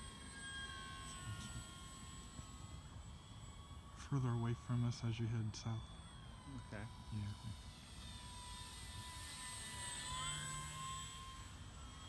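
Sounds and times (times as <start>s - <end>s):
model plane motor whine: 0.0s - 12.0s.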